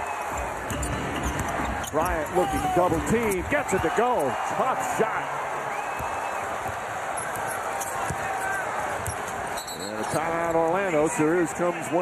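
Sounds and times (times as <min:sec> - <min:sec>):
arena crowd noise: 0:00.0 - 0:12.0.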